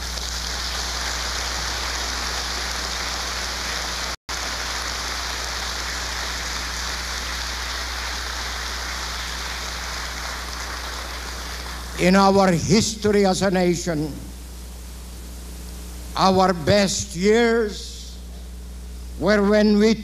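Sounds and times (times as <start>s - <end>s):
audience applause: 0.0s - 12.1s
low electrical hum: 0.0s - 20.0s.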